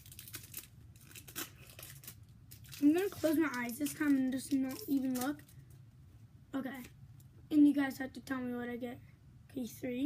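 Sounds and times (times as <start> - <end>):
foil wrapper tearing and crinkling: 0.0 - 5.6.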